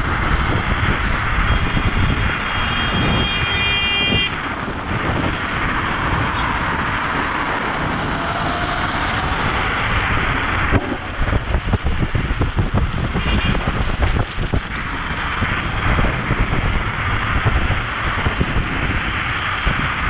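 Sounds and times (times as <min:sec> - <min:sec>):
road rumble: 0:00.0 - 0:20.0
wind buffeting microphone: 0:00.0 - 0:20.0.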